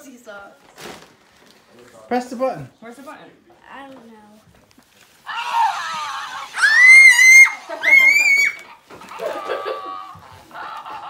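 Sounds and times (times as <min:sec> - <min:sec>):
child shrieking: 0:05.3 - 0:08.7.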